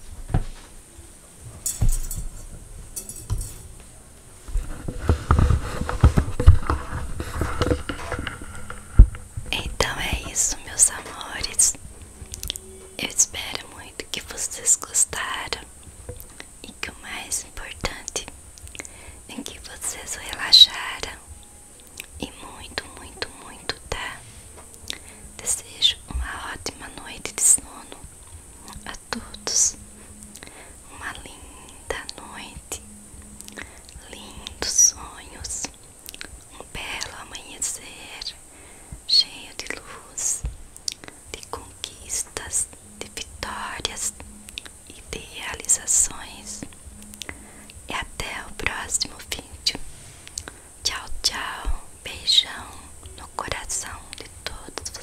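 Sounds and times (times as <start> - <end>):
fingers rustling through wig hair: 4.4 - 13.8.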